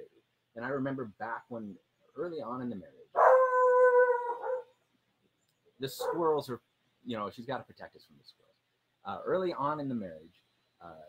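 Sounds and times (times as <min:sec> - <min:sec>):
dog calling: 0:03.2 - 0:04.8, 0:05.9 - 0:06.4.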